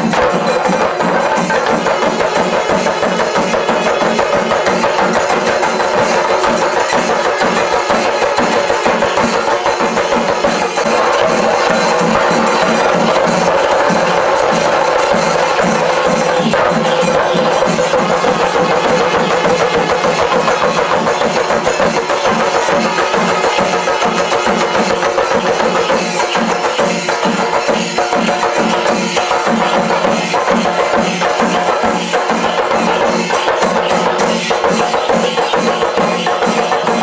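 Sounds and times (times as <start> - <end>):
drum ensemble playing fast rhythm: 0.0 - 37.0.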